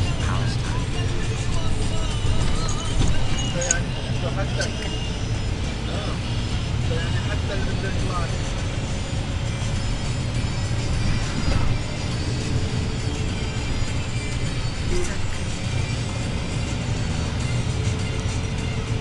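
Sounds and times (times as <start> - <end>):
background music: 0.0 - 19.0
bus rumbling: 0.0 - 19.0.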